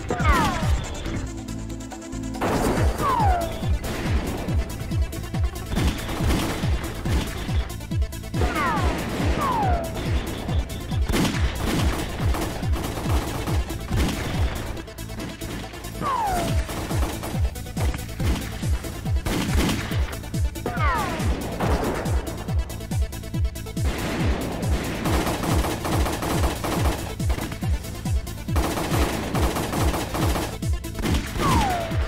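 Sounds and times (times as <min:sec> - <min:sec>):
music: 0:00.0 - 0:32.0
rapid rifle gunfire: 0:02.3 - 0:23.0, 0:23.6 - 0:32.0
ricochet whines: 0:02.6 - 0:03.8, 0:31.2 - 0:32.0.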